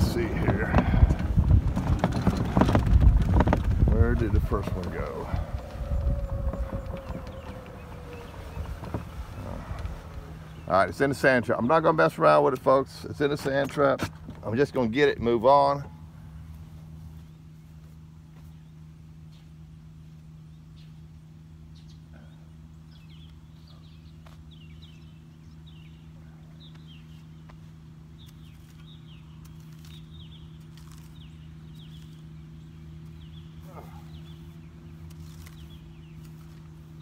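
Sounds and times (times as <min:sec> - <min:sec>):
birds chirping: 0:00.0 - 0:37.0
steady low hum: 0:00.0 - 0:37.0.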